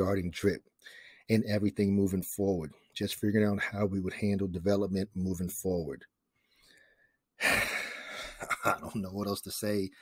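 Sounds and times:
man sighing: 0:07.4 - 0:08.4.

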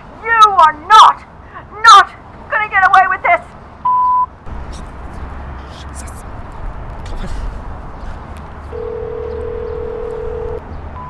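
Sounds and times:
long low tone over phone line: 0:08.7 - 0:11.0.

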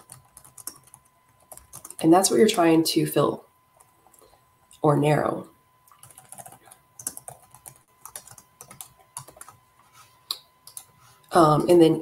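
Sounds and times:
computer keyboard typing: 0:00.0 - 0:02.1, 0:03.8 - 0:04.3, 0:05.9 - 0:09.6, 0:10.6 - 0:11.0.

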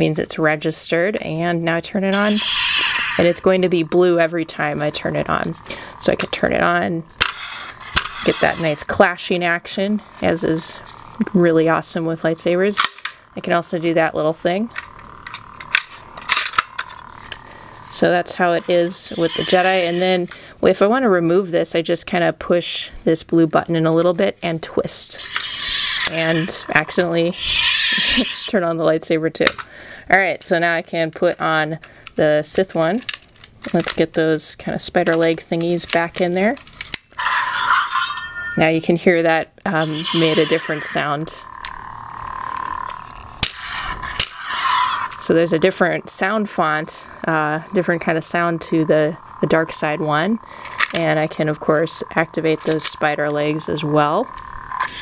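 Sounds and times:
electronic hum of toy: 0:01.4 - 0:20.8, 0:24.6 - 0:28.8, 0:35.8 - 0:38.8, 0:39.7 - 0:55.0.

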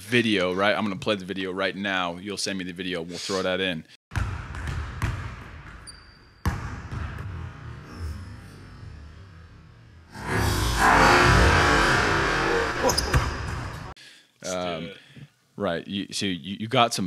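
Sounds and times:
basketball bouncing on hardwood: 0:04.2 - 0:05.8
sneaker squeak: 0:05.8 - 0:06.5, 0:12.8 - 0:13.6
loud sustained noise: 0:10.0 - 0:13.9.

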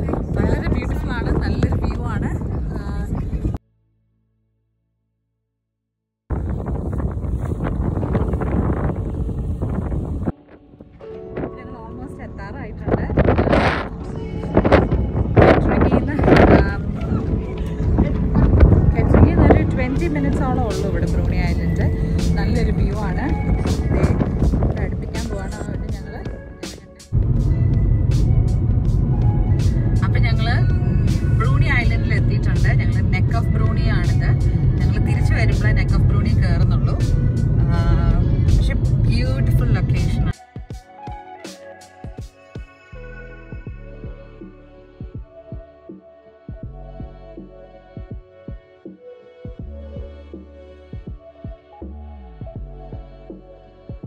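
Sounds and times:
wind buffeting microphone: 0:00.0 - 0:03.6, 0:06.3 - 0:40.3
car driving rumble: 0:11.4 - 0:40.3
song with singing voice: 0:13.3 - 0:27.5, 0:40.2 - 0:48.8.

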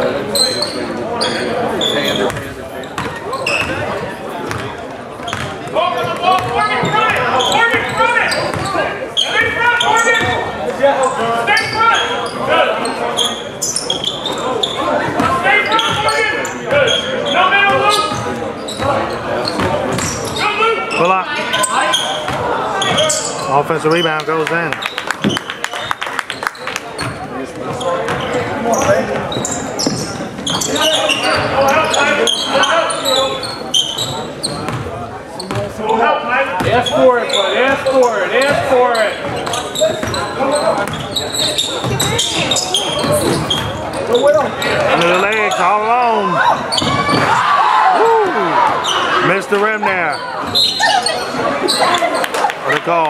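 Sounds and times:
voices calling out: 0:05.3 - 0:25.6, 0:35.4 - 0:53.0
basketball bouncing on hardwood floor: 0:06.4 - 0:07.0.

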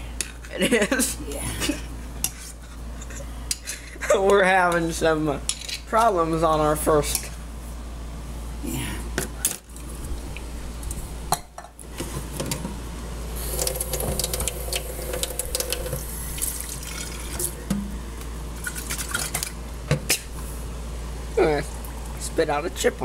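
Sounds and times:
faucet water running into sink: 0:13.4 - 0:17.6.

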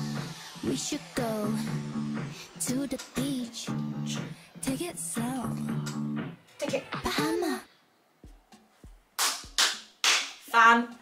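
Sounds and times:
kick drum thumps: 0:01.5 - 0:07.5, 0:08.2 - 0:09.6
hand claps: 0:08.8 - 0:10.5.

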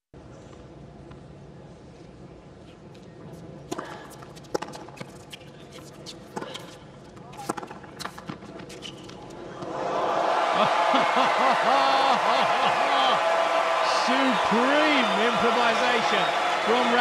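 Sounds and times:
crowd cheering and applauding: 0:09.6 - 0:17.0.

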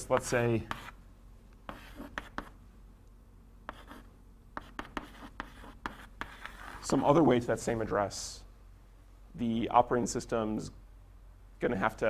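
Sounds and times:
chalk scratching on blackboard: 0:00.2 - 0:01.0, 0:01.7 - 0:02.6, 0:03.7 - 0:07.1.

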